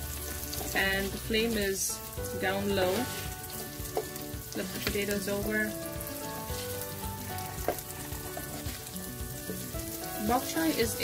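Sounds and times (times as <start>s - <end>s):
oil sizzling in a pan: 0.0s - 11.0s.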